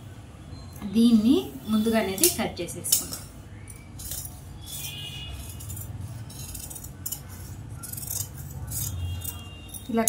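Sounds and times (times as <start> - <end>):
metal blades clicking: 2.2 - 10.0
shears snipping fabric: 4.2 - 10.0.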